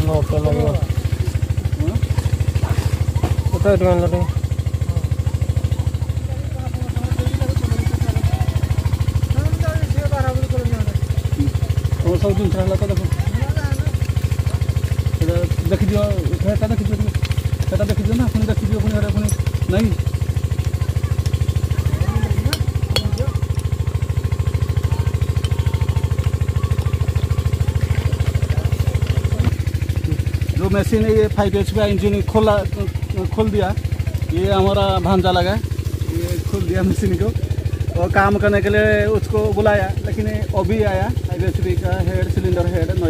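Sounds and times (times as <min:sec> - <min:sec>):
engine running with low thudding: 0:00.0 - 0:43.0.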